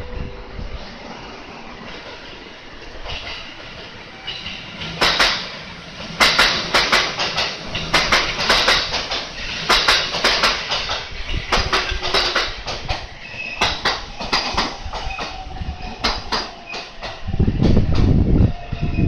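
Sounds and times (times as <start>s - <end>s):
train wheels clattering over joints: 1.8s - 19.0s
faint high wheel squeals: 13.2s - 13.8s.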